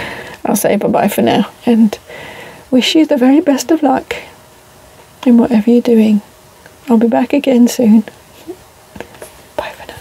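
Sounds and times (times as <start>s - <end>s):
woman whispering: 9.6s - 10.0s.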